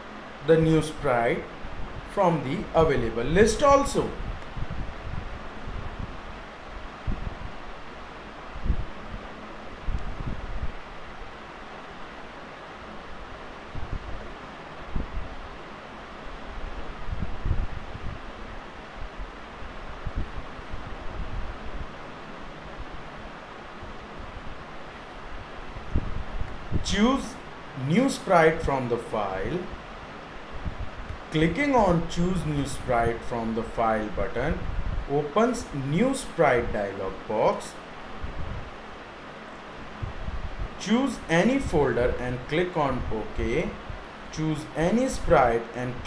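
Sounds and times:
microphone hiss: 0:00.0 - 0:46.0.

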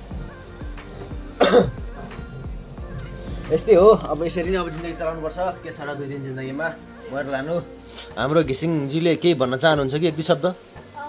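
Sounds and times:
background music with bass beat: 0:00.0 - 0:08.8
man coughing: 0:01.4 - 0:01.9.

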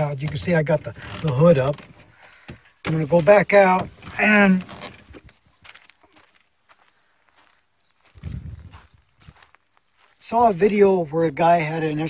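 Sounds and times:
footsteps on dry dirt: 0:00.0 - 0:12.0.

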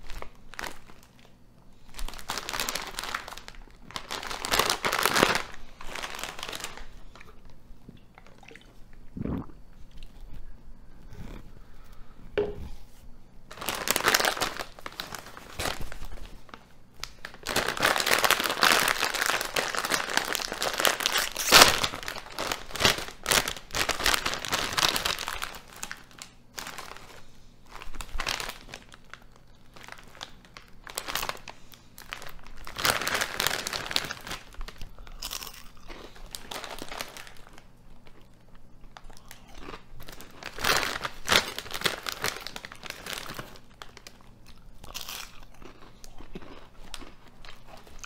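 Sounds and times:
chip bag crinkling: 0:00.0 - 0:08.8, 0:13.5 - 0:48.0.

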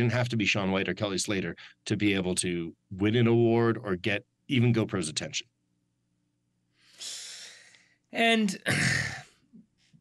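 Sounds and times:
person breathing: 0:06.7 - 0:08.1.

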